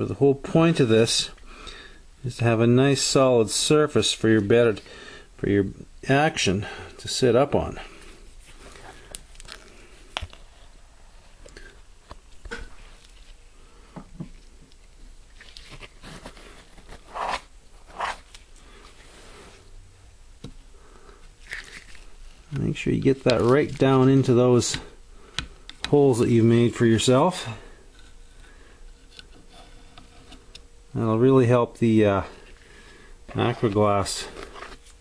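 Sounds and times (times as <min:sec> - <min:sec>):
sticky scraping and dabbing: 0:33.3 - 0:35.0.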